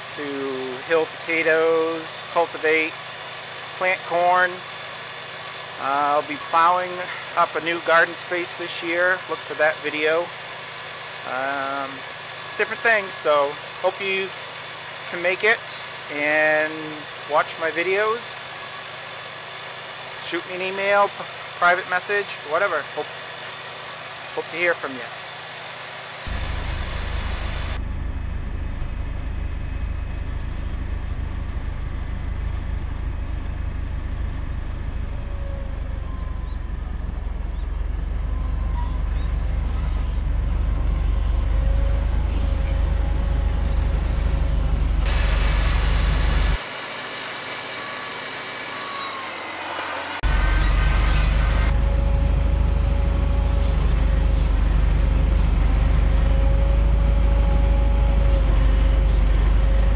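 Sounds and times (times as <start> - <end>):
tractor engine running: 0.0 - 24.8, 26.2 - 59.9.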